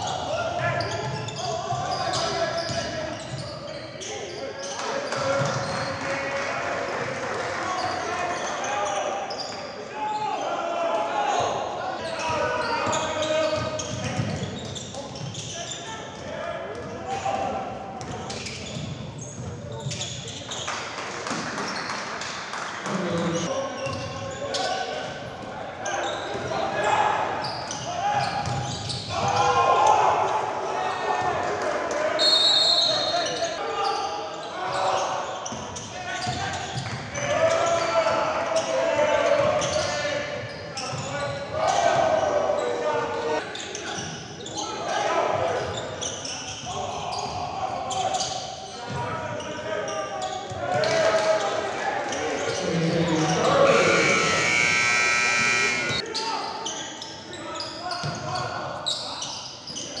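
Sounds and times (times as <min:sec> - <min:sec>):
shoe squeal: 0:00.0 - 0:06.1, 0:07.7 - 0:10.6, 0:11.9 - 0:16.1, 0:18.0 - 0:20.8, 0:22.9 - 0:25.0, 0:25.8 - 0:29.6, 0:32.2 - 0:44.9, 0:45.6 - 1:00.0
players shouting: 0:50.8 - 0:56.1
buzzer tone: 0:53.2 - 0:56.0.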